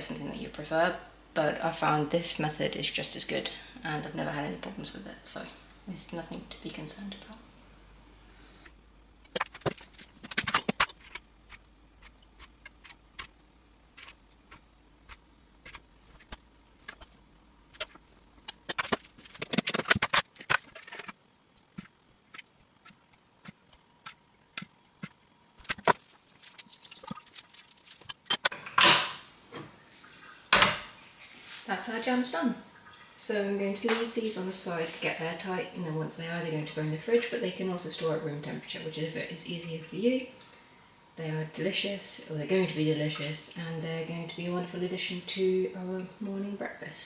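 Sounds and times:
sharp clicks and knocks: 9.2s - 13.4s, 14.0s - 29.0s.

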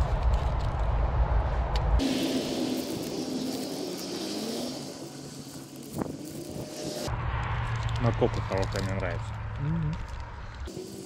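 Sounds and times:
wind rumbling on microphone: 0.0s - 2.0s.

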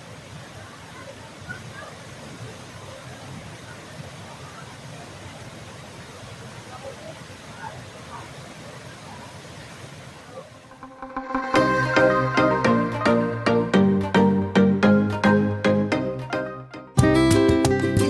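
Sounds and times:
waterfall rushing: 0.1s - 14.8s.

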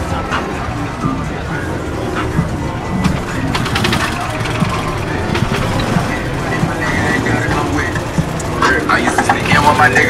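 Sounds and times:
music playing: 0.0s - 10.0s
people talking: 0.0s - 10.0s
traffic rumble: 0.0s - 10.0s.

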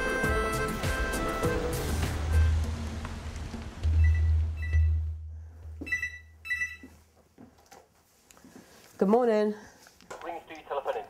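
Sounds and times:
background music with deep bass: 0.0s - 5.0s
short high electronic beeps: 5.8s - 6.9s.

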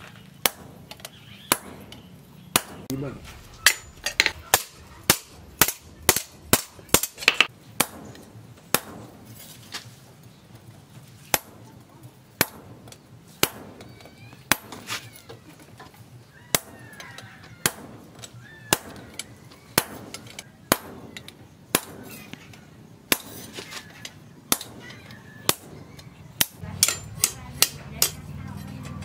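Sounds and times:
hammer striking metal on anvil: 3.6s - 8.1s, 26.4s - 29.0s.

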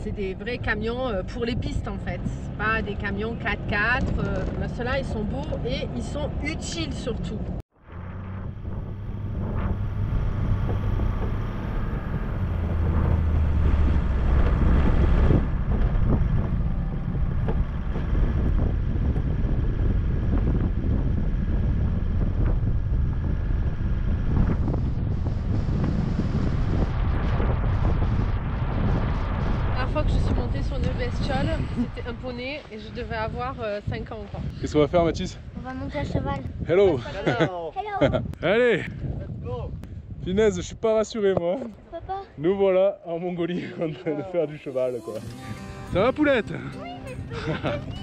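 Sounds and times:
diesel engine droning: 0.0s - 33.6s, 44.8s - 48.0s
wind buffeting microphone: 0.0s - 43.0s, 45.5s - 48.0s.

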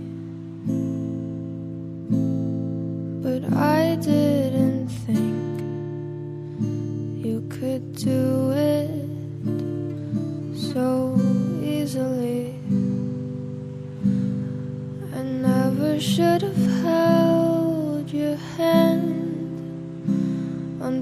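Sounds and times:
acoustic guitar strumming: 0.0s - 21.0s
woman singing: 3.1s - 6.2s, 7.0s - 13.1s, 14.9s - 21.0s.

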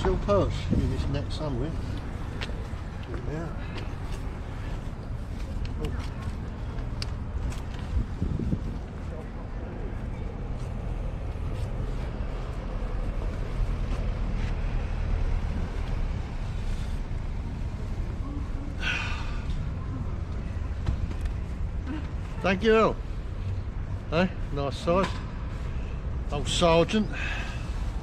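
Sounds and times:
low outdoor rumble: 0.0s - 28.0s.

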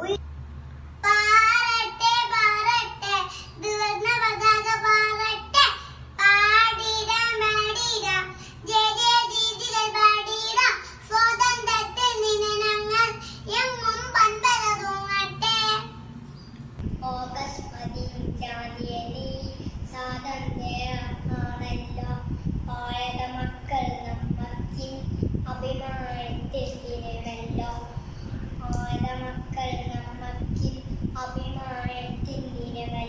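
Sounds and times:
girl singing: 1.0s - 16.0s, 16.9s - 33.0s.

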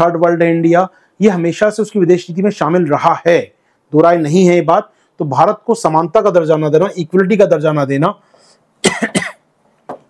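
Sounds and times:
man speaking: 0.0s - 8.3s
man coughing: 8.8s - 9.5s.

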